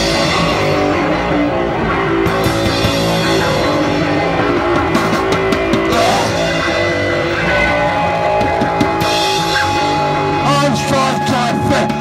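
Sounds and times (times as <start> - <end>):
electric bass guitar: 0.0 - 12.0
drum kit with cymbals: 1.9 - 12.0.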